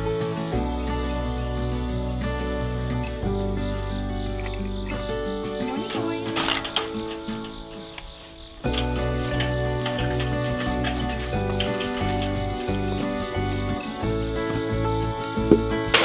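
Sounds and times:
background music sustained chords: 0:00.0 - 0:16.0
brief rattle: 0:05.5 - 0:14.2, 0:15.5 - 0:16.0.

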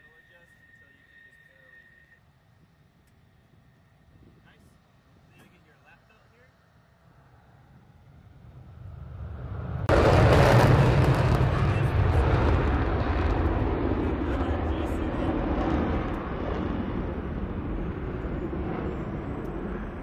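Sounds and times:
jet engine rushing: 0:07.3 - 0:20.0.

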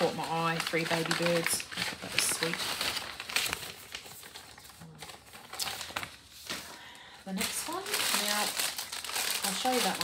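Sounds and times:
packaging rustling and crinkling: 0:00.0 - 0:10.0.

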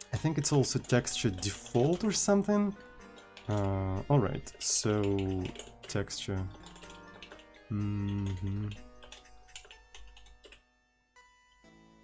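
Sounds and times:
faint music: 0:00.0 - 0:12.0
typing on computer keyboard: 0:00.4 - 0:03.8, 0:04.5 - 0:10.6.

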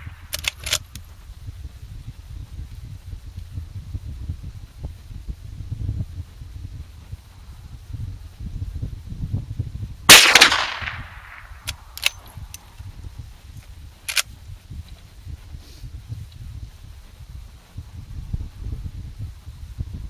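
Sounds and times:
wind rumble on microphone: 0:00.0 - 0:20.0
rifle lever clicking: 0:00.3 - 0:01.0, 0:10.2 - 0:12.3
rifle gunshot: 0:10.1 - 0:12.2.

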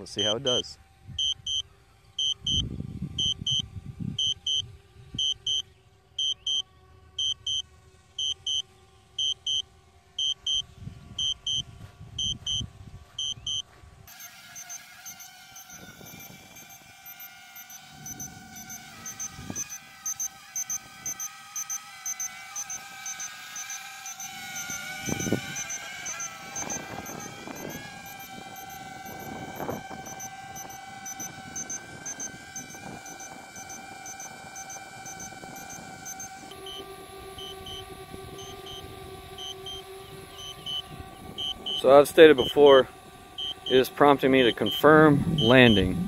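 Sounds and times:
drone propellers whining: 0:00.0 - 0:46.0
remote controller double beeps: 0:01.2 - 0:01.6, 0:03.2 - 0:03.6, 0:04.2 - 0:04.6, 0:09.2 - 0:09.6, 0:11.2 - 0:11.6, 0:12.2 - 0:12.6, 0:13.2 - 0:13.6, 0:40.4 - 0:41.9, 0:43.4 - 0:43.8, 0:44.6 - 0:46.0.

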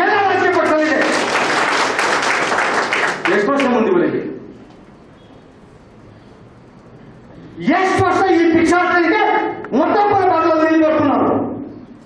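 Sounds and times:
man speaking into a microphone: 0:00.0 - 0:01.2, 0:03.2 - 0:04.5, 0:07.6 - 0:11.7.

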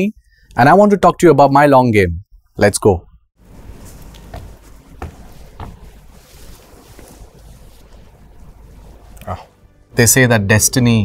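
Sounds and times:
satin cloth swishing: 0:03.4 - 0:09.7.

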